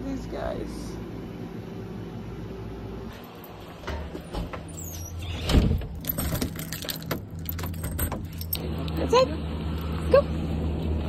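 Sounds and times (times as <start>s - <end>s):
steady low hum: 0.0s - 4.8s
keys jangling: 5.8s - 9.0s.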